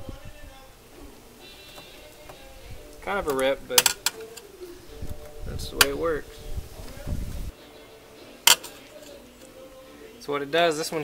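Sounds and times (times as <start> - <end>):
screwdriver tip tapping metal: 3.2 - 4.5, 8.5 - 9.2.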